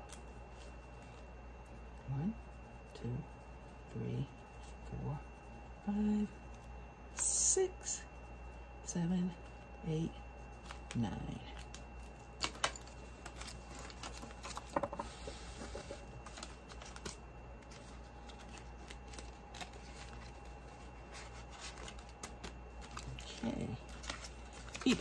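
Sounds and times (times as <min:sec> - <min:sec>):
faint steady hum: 0:00.0 - 0:25.0
binder pages flipping: 0:10.5 - 0:11.0, 0:11.6 - 0:25.0.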